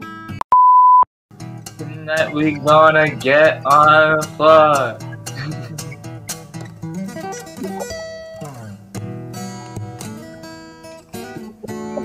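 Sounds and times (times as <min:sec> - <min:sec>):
acoustic guitar notes: 0:01.4 - 0:12.0.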